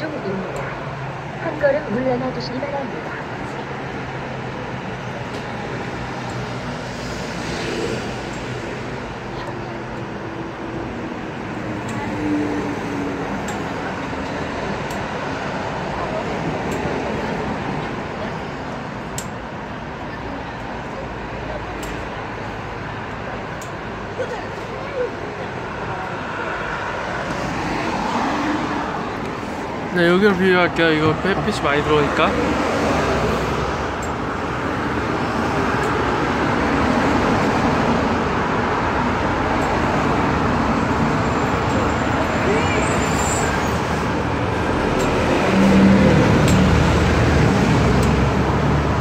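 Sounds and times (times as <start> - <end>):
bus engine running: 0.0 - 49.0
road traffic: 0.0 - 49.0.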